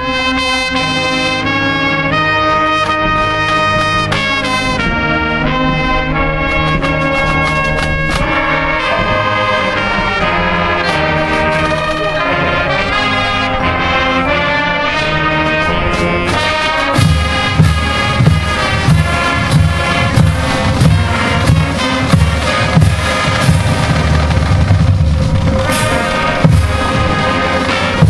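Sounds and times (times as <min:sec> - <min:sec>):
marching band playing: 0:00.0 - 0:28.0
bass drum hits: 0:17.0 - 0:28.0.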